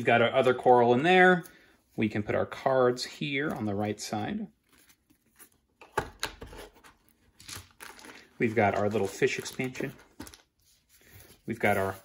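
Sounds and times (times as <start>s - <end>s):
plastic bags crinkling: 7.4s - 10.6s.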